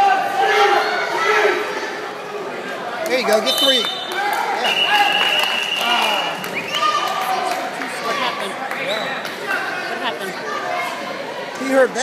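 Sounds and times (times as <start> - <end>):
referee's whistle long blast: 3.5 - 6.9.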